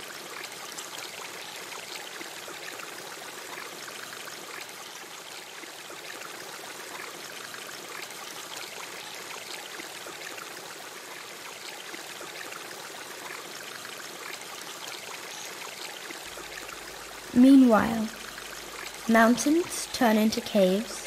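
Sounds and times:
water trickling over rock: 0.0 - 21.0.

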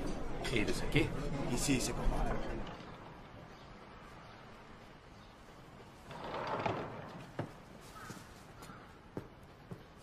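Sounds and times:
sliding door rolling open: 6.0 - 7.6.

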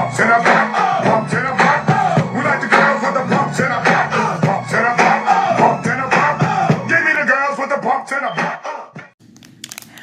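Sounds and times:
intro music with singing: 0.0 - 9.2
plastic package crinkling: 9.2 - 10.0.

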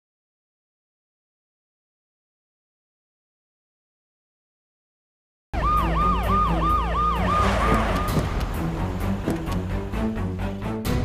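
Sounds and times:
police siren yelping: 5.6 - 8.4.

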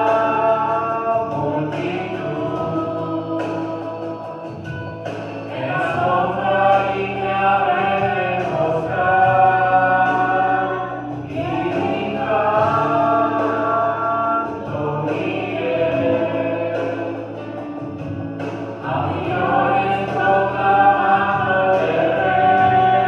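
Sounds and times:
man singing into microphone: 0.0 - 23.0.

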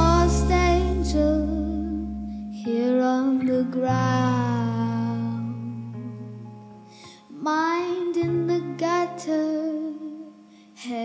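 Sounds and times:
low sustained bass: 0.0 - 3.2
girl singing slow song: 0.0 - 11.0
soft guitar: 0.0 - 11.0.

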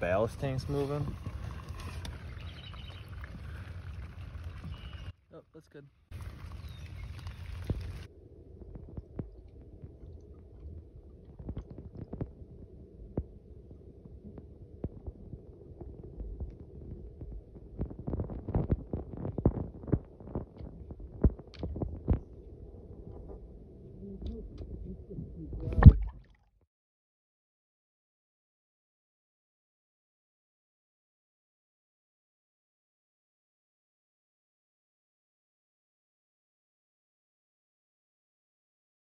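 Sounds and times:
underwater water rumble: 0.0 - 5.1, 6.1 - 26.5
faint steady hum: 7.6 - 26.3
underwater clicks and knocks: 8.6 - 13.4, 14.3 - 22.5, 25.5 - 26.4.

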